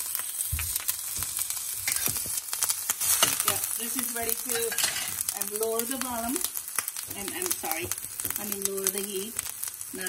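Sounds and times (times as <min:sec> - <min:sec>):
ginger sizzling in oil: 0:00.0 - 0:10.0
utensil scraping pan: 0:04.4 - 0:05.2.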